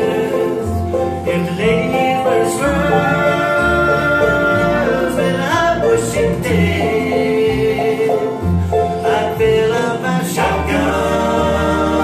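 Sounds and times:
bluegrass band playing: 0:00.0 - 0:12.0
men singing: 0:00.0 - 0:12.0.

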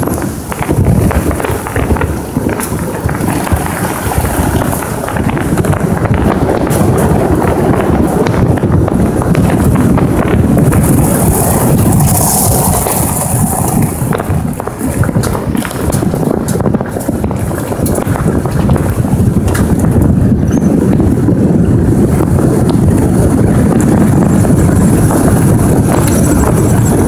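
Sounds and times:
vehicle rumbling on road: 0:00.0 - 0:27.0
wind buffeting microphone: 0:00.0 - 0:27.0.

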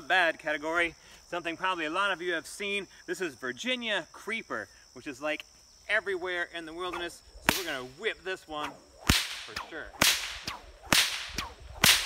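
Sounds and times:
bullwhip cracking: 0:06.9 - 0:07.9, 0:08.5 - 0:12.0.

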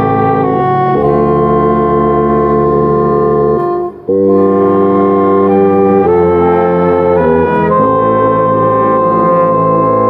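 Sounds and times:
bass saxophone playing a hymn: 0:00.0 - 0:10.0
organ chords: 0:00.0 - 0:10.0.

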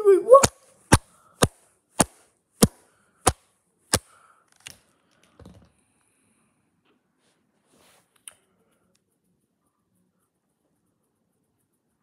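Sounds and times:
sharp taps: 0:00.4 - 0:04.1.

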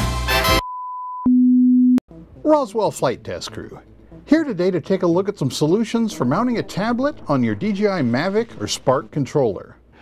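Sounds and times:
intro music: 0:03.6 - 0:09.4.

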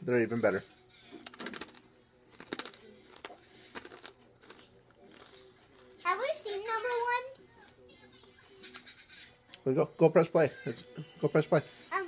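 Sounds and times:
crunchy snack being chewed: 0:01.2 - 0:05.9
child's voice: 0:06.0 - 0:08.5.

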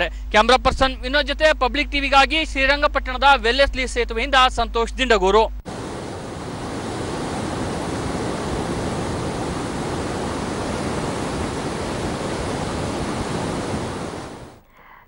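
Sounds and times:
fast-flowing river rushing: 0:05.7 - 0:14.6.

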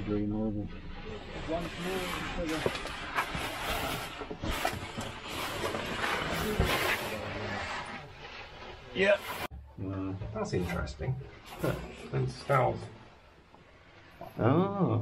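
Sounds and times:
oversuits scraping against rock: 0:00.0 - 0:09.5, 0:10.4 - 0:14.2.

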